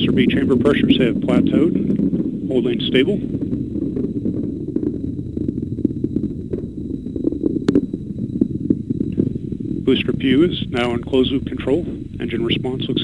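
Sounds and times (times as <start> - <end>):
crackles and sharp pops: 0.0 - 13.0
rocket engine roar: 0.0 - 13.0.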